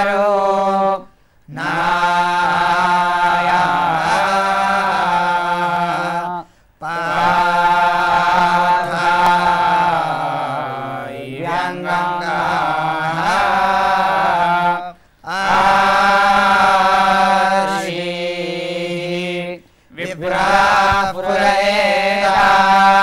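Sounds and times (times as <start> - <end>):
men chanting in unison: 0.0 - 23.0.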